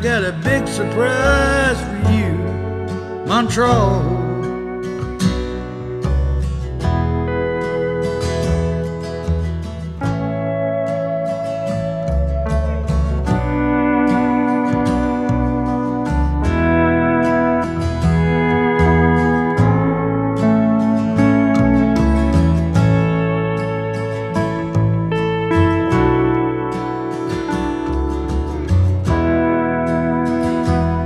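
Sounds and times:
bass guitar: 0.0s - 31.0s
lead guitar sliding notes: 0.0s - 31.0s
rhythm guitar: 0.0s - 31.0s.

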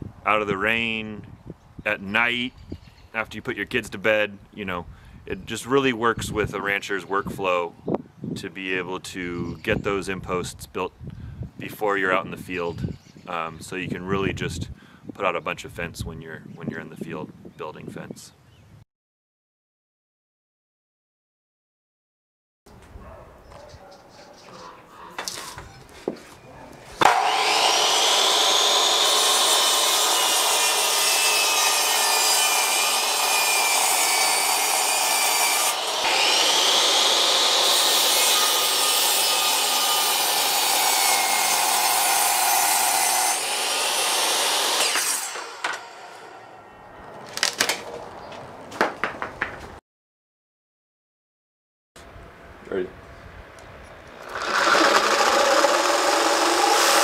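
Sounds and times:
miter saw cutting wood: 27.0s - 46.5s, 54.2s - 57.0s.

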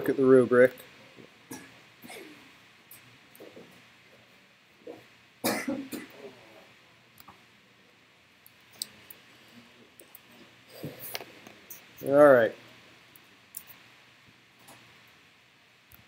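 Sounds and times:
faint scattered noises: 0.0s - 16.0s
person coughing: 1.5s - 2.4s, 5.4s - 6.4s.

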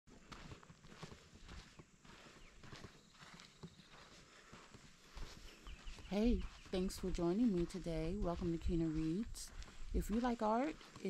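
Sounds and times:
faint soft footsteps: 0.1s - 11.0s.

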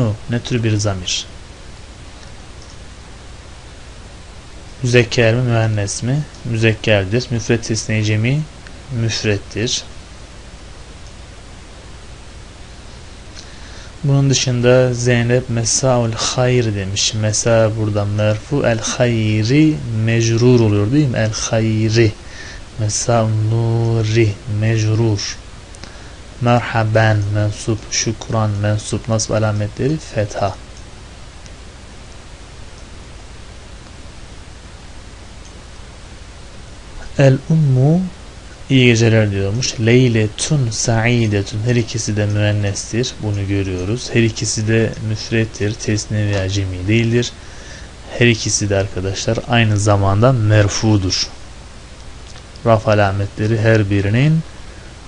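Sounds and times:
background hiss: 0.0s - 55.0s
low hum: 0.0s - 55.0s.

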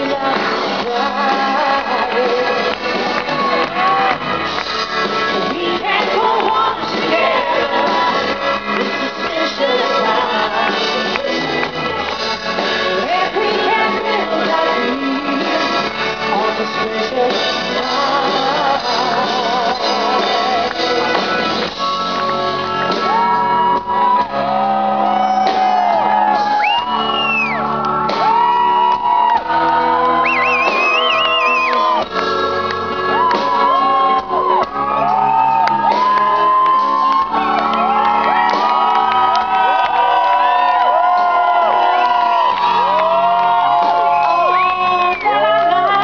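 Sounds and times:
drums: 0.0s - 46.0s
voices singing and shouting: 5.6s - 11.8s.

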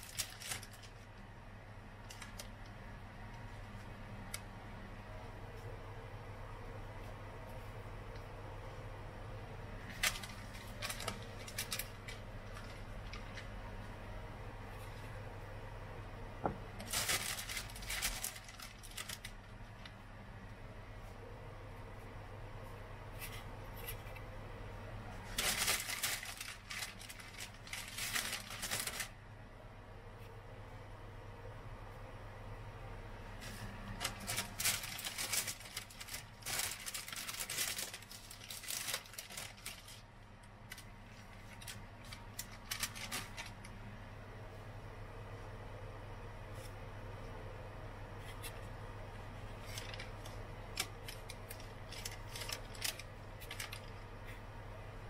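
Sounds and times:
foil pie tin clicking and crinkling: 0.0s - 1.1s, 9.8s - 13.6s, 16.8s - 19.9s, 25.3s - 29.1s, 33.9s - 43.7s, 49.6s - 54.0s.

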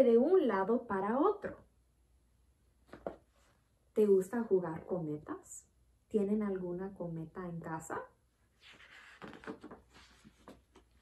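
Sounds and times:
book pages rustling: 2.8s - 3.6s, 8.6s - 11.0s.

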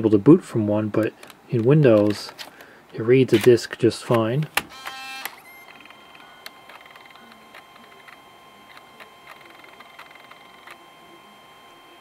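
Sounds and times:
floppy drive whine: 0.0s - 12.0s
floppy drive buzz: 4.3s - 12.0s.

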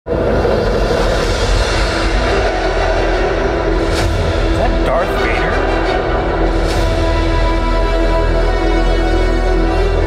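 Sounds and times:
deep rumble: 0.1s - 9.2s.

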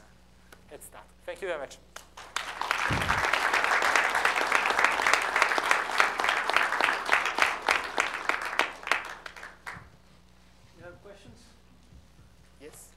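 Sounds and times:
audience applauding: 2.2s - 9.8s.

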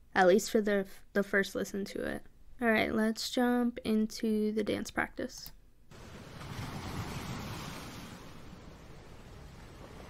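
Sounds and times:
ocean surf rushing: 5.9s - 10.0s.

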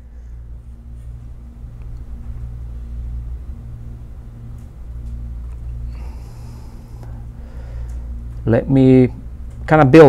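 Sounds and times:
low hum and rumble: 0.0s - 10.0s.

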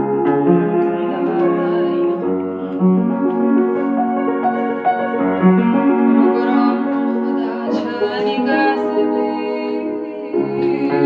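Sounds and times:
slow melodic upright piano: 0.0s - 11.0s.

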